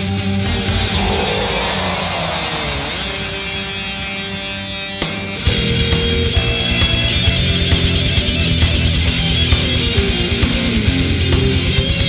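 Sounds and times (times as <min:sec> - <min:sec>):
noisy sweep: 0:00.5 - 0:05.0.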